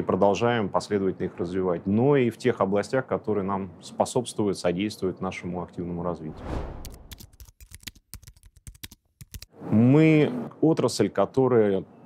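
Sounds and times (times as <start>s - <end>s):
keyboard typing clicks: 6.8s - 9.5s.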